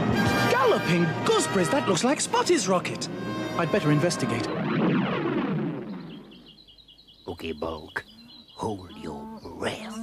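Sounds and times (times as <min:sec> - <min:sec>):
rapid bird chirping: 0:05.8 - 0:10.0.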